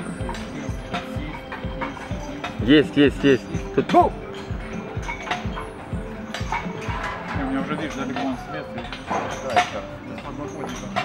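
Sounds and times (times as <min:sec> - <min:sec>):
sharp clinks and knocks: 0:03.2 - 0:11.0.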